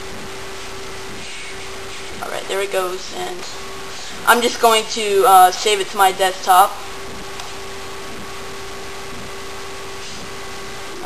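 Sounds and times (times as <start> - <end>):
constant hum: 0.0 - 11.0.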